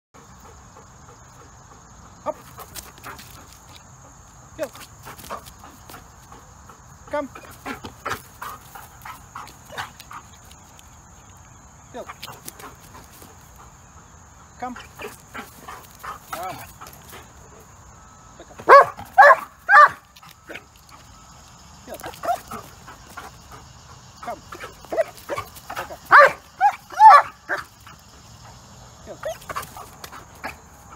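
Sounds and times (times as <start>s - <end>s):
person giving commands: 7.1s - 7.5s, 14.6s - 15.0s.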